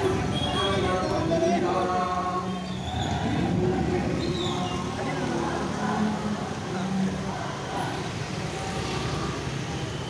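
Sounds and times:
indistinct voices: 0:00.0 - 0:08.8
motor scooter traffic rumble: 0:00.0 - 0:10.0.

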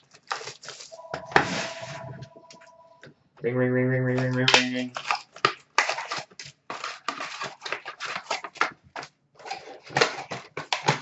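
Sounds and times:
card packs crinkling and ripping: 0:00.0 - 0:00.9, 0:04.1 - 0:11.0.

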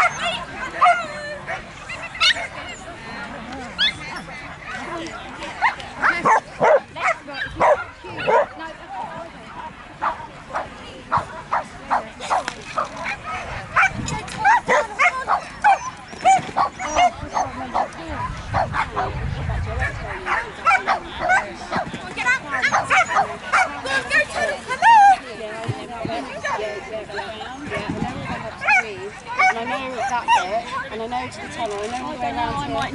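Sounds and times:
dog barking: 0:06.0 - 0:08.5, 0:13.0 - 0:14.0, 0:14.7 - 0:17.9, 0:18.6 - 0:19.1, 0:20.2 - 0:21.5.

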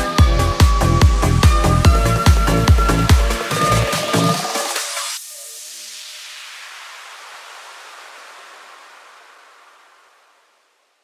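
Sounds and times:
white noise sweep: 0:02.5 - 0:11.0.

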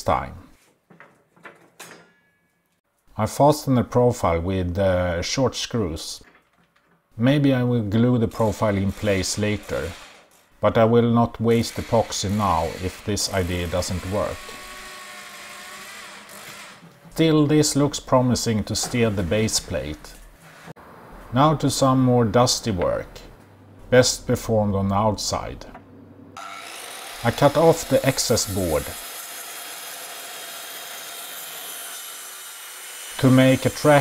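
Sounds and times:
circular saw cutting wood: 0:08.4 - 0:10.4, 0:11.4 - 0:20.8, 0:26.4 - 0:34.0
electric drill motor running: 0:14.4 - 0:16.9.

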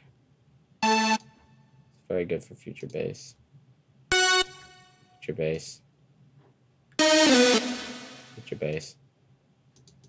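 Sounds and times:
bright synthesizer note: 0:00.8 - 0:01.4, 0:04.1 - 0:05.2, 0:07.0 - 0:08.5.

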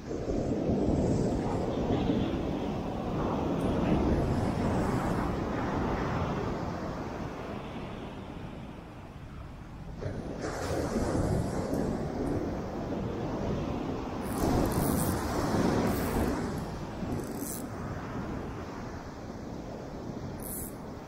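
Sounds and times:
wind buffeting microphone: 0:00.0 - 0:21.0
surf breaking on beach: 0:09.9 - 0:21.0.

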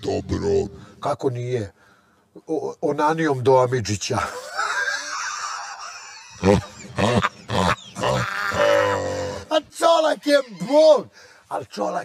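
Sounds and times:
person making vocal sounds: 0:06.4 - 0:09.5.

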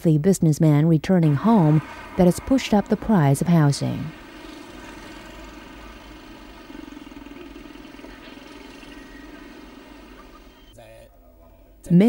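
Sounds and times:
motor scooter passing: 0:01.2 - 0:10.7
vehicle engines running: 0:01.2 - 0:10.7.

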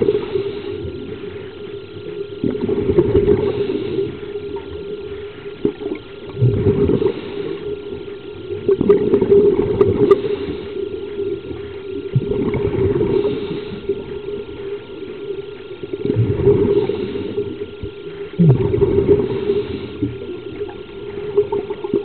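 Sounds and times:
underwater bubbles gurgling: 0:00.0 - 0:22.0.

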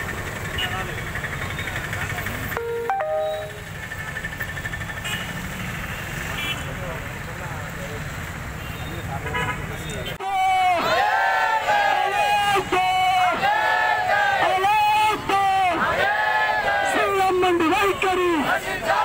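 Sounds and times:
traffic rumble: 0:00.0 - 0:02.6
vehicle horn honk: 0:02.6 - 0:03.7.

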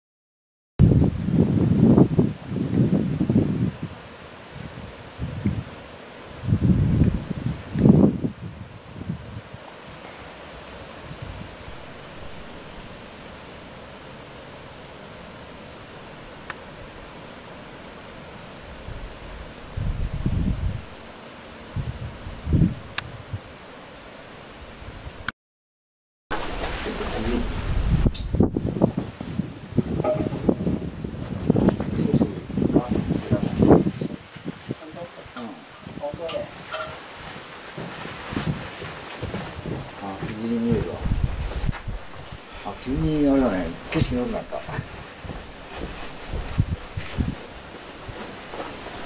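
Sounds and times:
wind gusting on microphone: 0:00.8 - 0:23.6, 0:26.3 - 0:49.0
insects chirping: 0:00.8 - 0:25.2, 0:26.3 - 0:49.0
steady outdoor hiss: 0:00.8 - 0:25.3, 0:26.3 - 0:49.0.

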